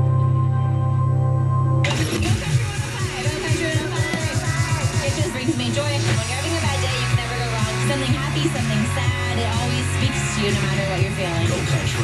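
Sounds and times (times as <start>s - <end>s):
full music track: 0.0s - 12.0s.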